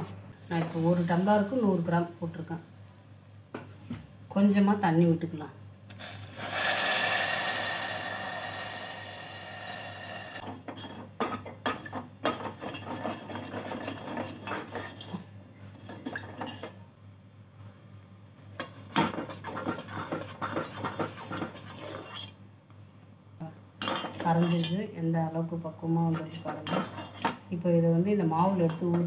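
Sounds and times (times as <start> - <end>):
water hissing in hot pan: 6.0 - 10.4.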